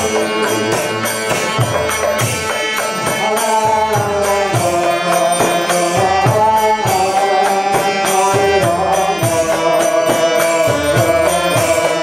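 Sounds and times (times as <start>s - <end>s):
hand drum beat: 0.0s - 7.1s.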